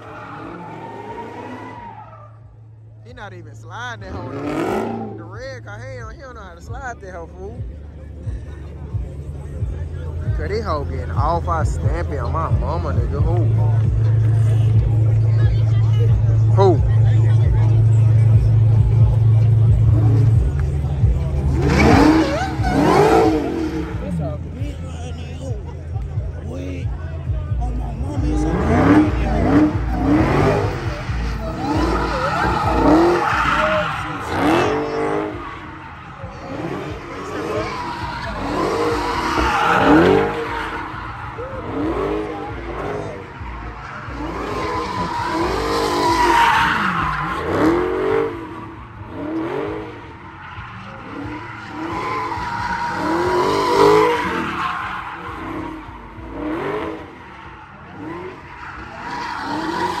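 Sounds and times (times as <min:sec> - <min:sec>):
car engine revving: 0:00.0 - 1:00.0
tires squealing: 0:00.0 - 1:00.0.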